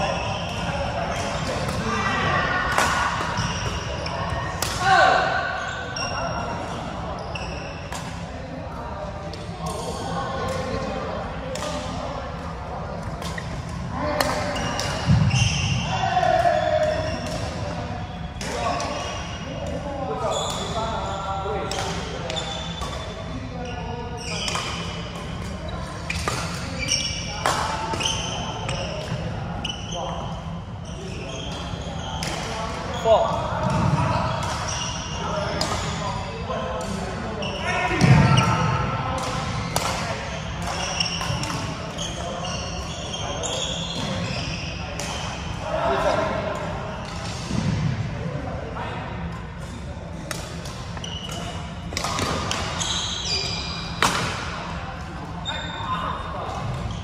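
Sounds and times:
shoes squeaking on court floor: 0:00.0 - 0:08.2, 0:13.2 - 0:19.4, 0:20.2 - 0:36.6, 0:39.6 - 0:47.8, 0:50.1 - 0:57.0
rackets hitting shuttlecock: 0:02.6 - 0:04.8, 0:24.3 - 0:29.2, 0:39.2 - 0:42.3, 0:50.2 - 0:52.8, 0:54.0 - 0:54.8.

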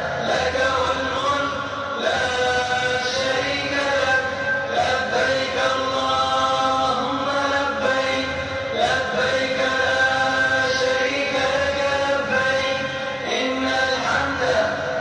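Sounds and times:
man chanting melodically: 0:00.0 - 0:15.0.

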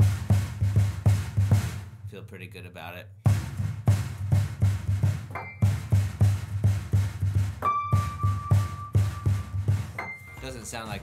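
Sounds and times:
steady drum beat: 0:00.0 - 0:02.3, 0:03.1 - 0:11.0.

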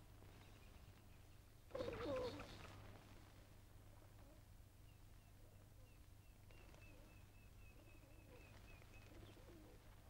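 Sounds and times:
faint pigeons cooing: 0:01.7 - 0:10.0.

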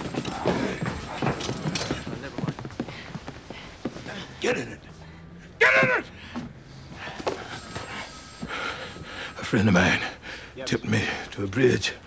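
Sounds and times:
scuffling footsteps: 0:06.9 - 0:09.3.

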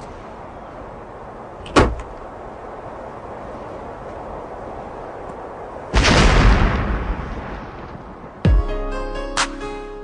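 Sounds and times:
car door slamming: 0:01.6 - 0:02.1.

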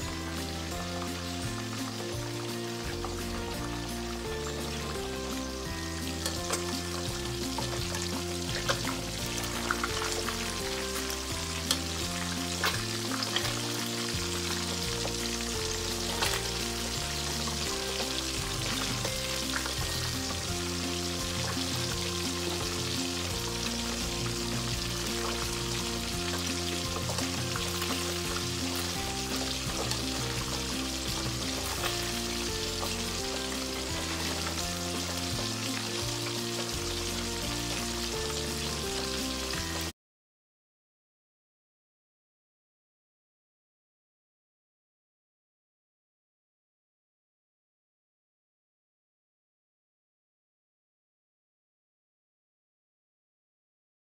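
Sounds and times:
fish deep-frying in oil: 0:00.0 - 0:39.9.

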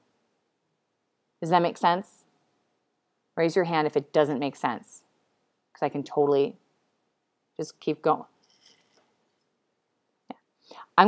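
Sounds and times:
soft in-breath: 0:10.6 - 0:10.9.

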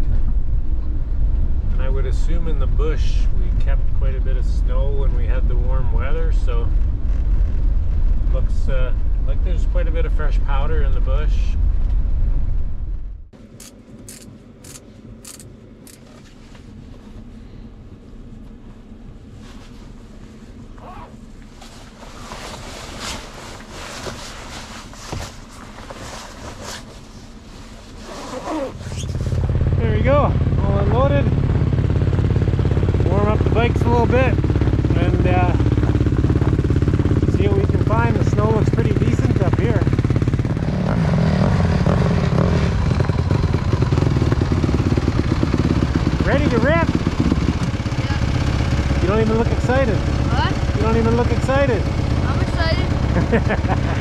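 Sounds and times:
scattered clicks: 0:13.6 - 0:16.0
clothing rustling: 0:19.3 - 0:29.5
snow bike engine drone: 0:28.0 - 0:54.0.

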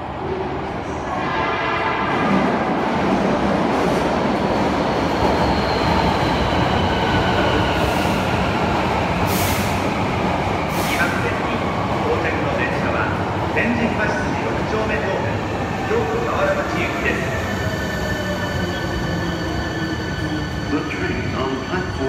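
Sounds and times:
electric train rumbling on rails: 0:00.0 - 0:22.0.

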